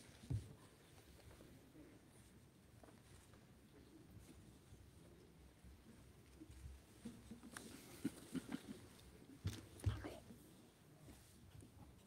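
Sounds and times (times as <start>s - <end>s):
people whispering: 9.7s - 10.6s.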